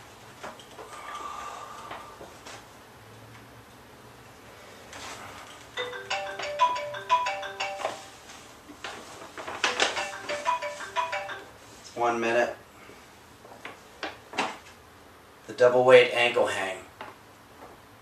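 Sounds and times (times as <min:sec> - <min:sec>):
phone timer alarm melody: 0:05.8 - 0:08.2, 0:09.7 - 0:11.6.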